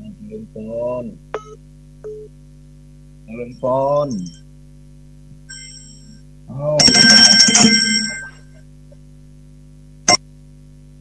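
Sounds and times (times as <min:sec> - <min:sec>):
telephone ringing: 0:06.8 - 0:08.6.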